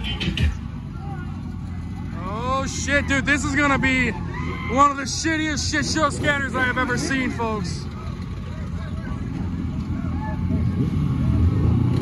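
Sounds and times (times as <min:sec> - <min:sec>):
car engines idling: 0:00.0 - 0:12.0
crowd noise: 0:00.0 - 0:12.0.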